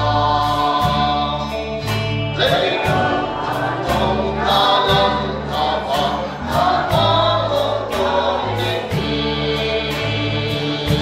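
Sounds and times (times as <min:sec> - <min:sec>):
choir singing a hymn: 0:00.0 - 0:11.0
held bass line: 0:00.0 - 0:11.0
steady beat: 0:00.0 - 0:11.0.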